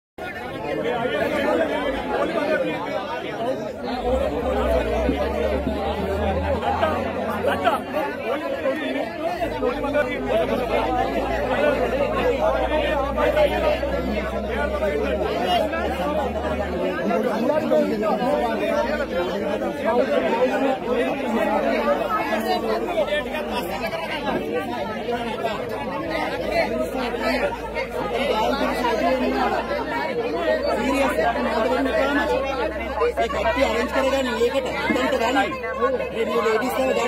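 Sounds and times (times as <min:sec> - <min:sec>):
crowd babble: 0:00.2 - 0:37.0.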